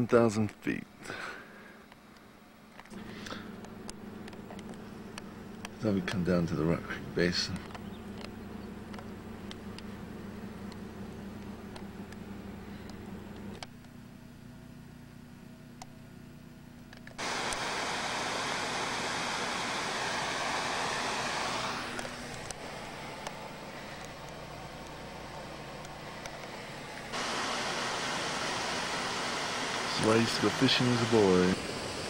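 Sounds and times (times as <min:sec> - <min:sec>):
faint hiss: 0:17.2 - 0:32.0.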